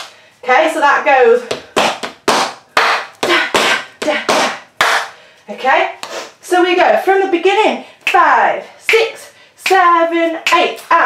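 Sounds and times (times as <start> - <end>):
tap shoes striking hard floor: 1.5 - 5.1.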